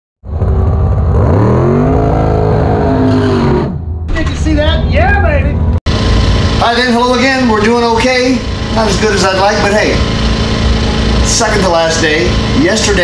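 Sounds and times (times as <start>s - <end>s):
race car engine revving: 0.3s - 4.0s, 5.6s - 13.0s.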